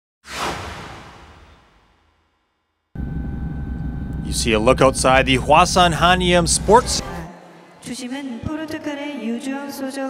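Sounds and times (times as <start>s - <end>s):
whoosh sound effect: 0.2s - 2.3s
low background rumble: 3.0s - 7.2s.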